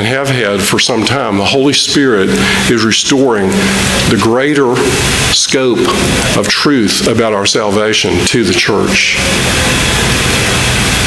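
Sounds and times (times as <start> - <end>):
burst of static hiss: 0.5 - 11.0.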